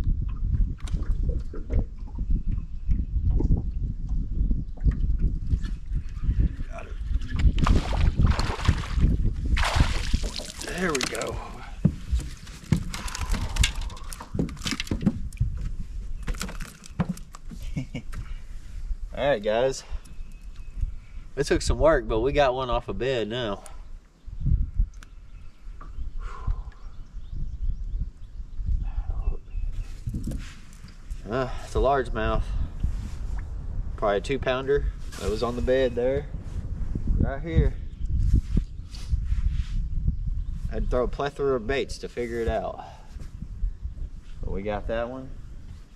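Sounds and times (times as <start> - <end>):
wind rumbling on microphone: 0.0 - 45.9
knocks and clatter on boat deck: 14.2 - 15.7.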